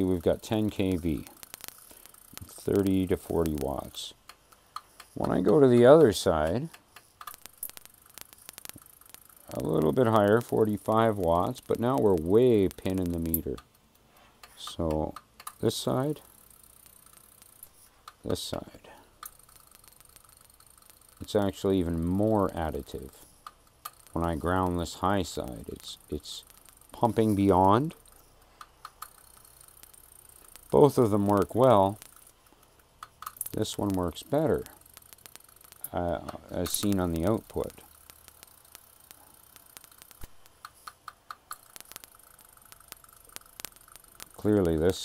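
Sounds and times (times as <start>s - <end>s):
faint high-pitched whine: 0.0s - 45.0s
rapid even ticking: 0.0s - 45.0s
sharp click: 1.0s - 6.1s, 6.7s - 10.6s, 25.7s - 44.8s.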